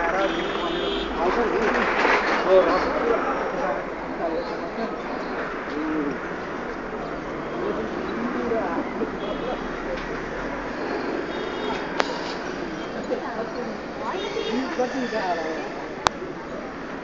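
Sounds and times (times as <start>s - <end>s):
distant voices: 0.0s - 17.0s.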